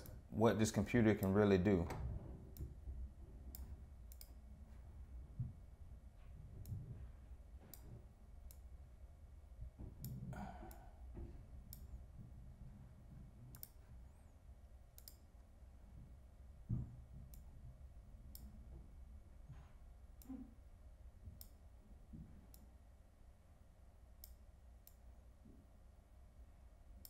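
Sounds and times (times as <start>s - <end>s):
low room hum: 0.0s - 27.0s
computer mouse clicks: 3.5s - 4.4s, 13.5s - 13.8s, 15.0s - 15.3s.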